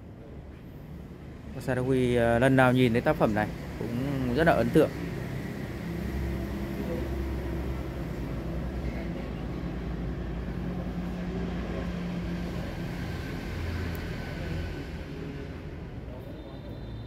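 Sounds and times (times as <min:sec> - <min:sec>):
low engine-like hum: 0:00.0 - 0:17.0.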